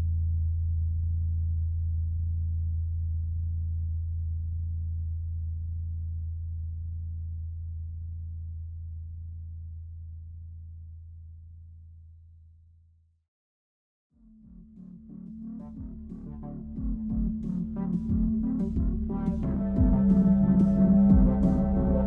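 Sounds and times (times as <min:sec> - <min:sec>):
low electronic drone: 0:14.2 - 0:22.0.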